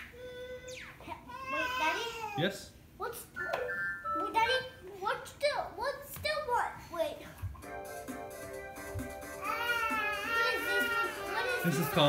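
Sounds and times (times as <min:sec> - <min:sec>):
young child's voice: 0:00.2 - 0:02.4, 0:03.0 - 0:03.6, 0:04.2 - 0:07.4, 0:09.5 - 0:12.0
electronic keyboard notes: 0:03.4 - 0:04.5.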